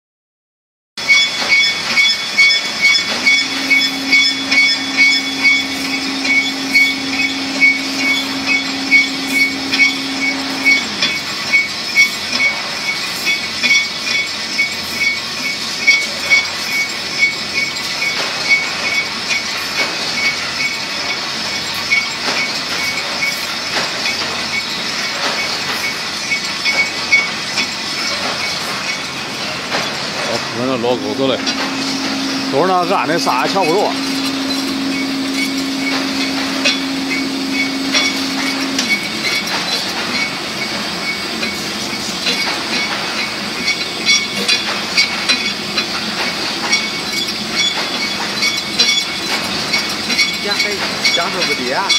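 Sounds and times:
coating machine running with high whine: 1.0 - 51.9
regular mechanical clacking: 1.0 - 51.9
low hum winding down: 3.4 - 11.1, 30.4 - 39.0.

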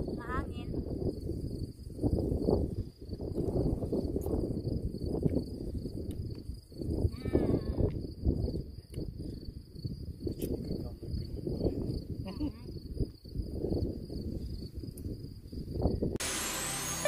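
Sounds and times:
wind buffeting microphone: 0.0 - 16.2
electronic music: 16.2 - 17.0
high-pitched insect drone: 16.2 - 17.0.

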